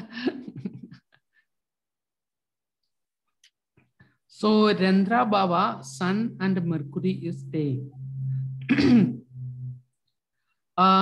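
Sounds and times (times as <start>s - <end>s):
man clearing his throat: 8.6s - 9.3s.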